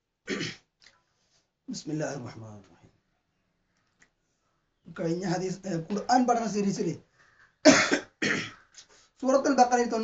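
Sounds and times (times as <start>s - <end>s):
person coughing: 0.3s - 0.6s, 7.7s - 8.6s.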